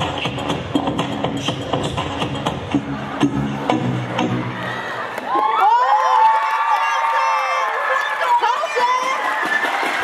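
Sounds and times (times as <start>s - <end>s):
pop dance music: 0.0s - 4.6s
audience cheering and screaming: 4.2s - 10.0s.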